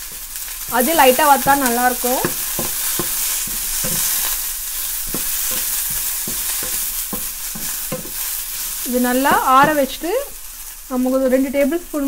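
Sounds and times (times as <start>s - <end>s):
wooden spatula scraping pan: 0.0s - 10.2s
food sizzling in a frying pan: 0.0s - 12.0s.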